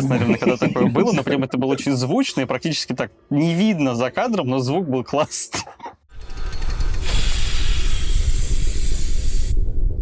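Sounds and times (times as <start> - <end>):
steady low rumble: 6.6 - 10.0
loud rushing hiss: 6.8 - 9.8.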